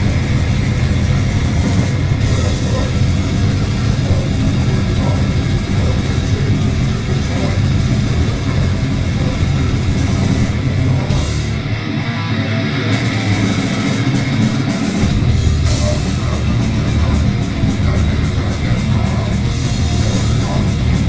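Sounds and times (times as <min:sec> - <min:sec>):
grindcore band playing live: 0:00.0 - 0:21.0.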